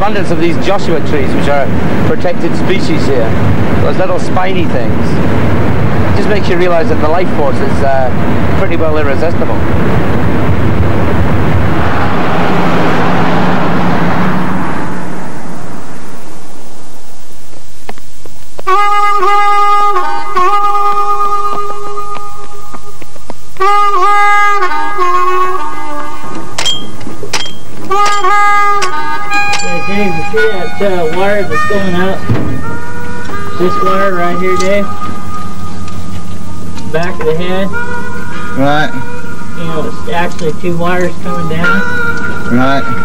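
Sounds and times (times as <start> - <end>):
wind and road noise: 0.0 - 43.0
melody of long held notes: 18.6 - 43.0.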